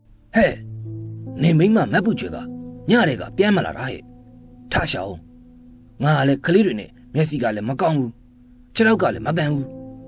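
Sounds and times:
background music with held chords: 0:00.0 - 0:10.0
person speaking: 0:00.3 - 0:05.3, 0:06.0 - 0:09.8.

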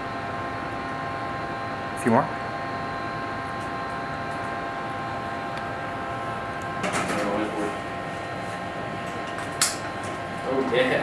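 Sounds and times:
electronic hum with fixed tones: 0:00.0 - 0:11.0
ventilation: 0:00.0 - 0:11.0.

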